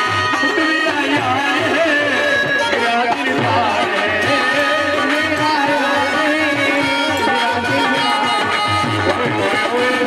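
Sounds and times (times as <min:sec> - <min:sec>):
hand drum beat: 0:00.0 - 0:09.7.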